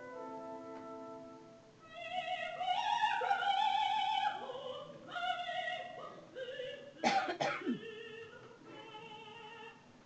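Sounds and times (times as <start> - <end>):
quiet sustained music: 0.0 - 9.9
person coughing: 7.0 - 7.8.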